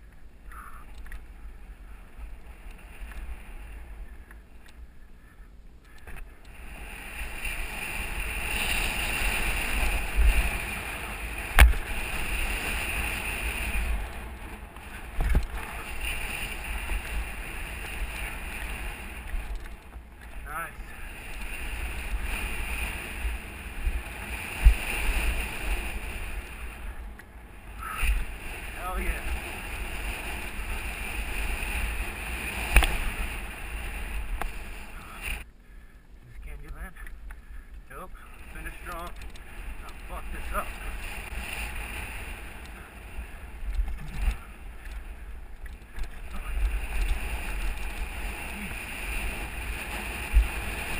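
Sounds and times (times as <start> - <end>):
mountain bike rattle: 5.8 - 35.4, 36.4 - 50.9
wind buffeting microphone: 6.4 - 35.5.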